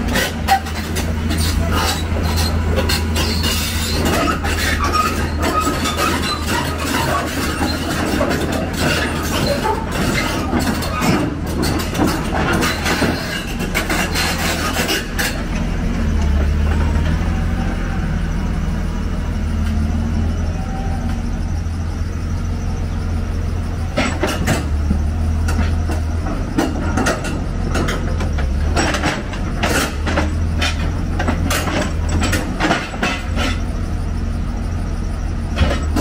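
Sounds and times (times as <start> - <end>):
excavator diesel engine running: 0.0 - 36.0
steel tracks clanking on ramps: 0.0 - 36.0.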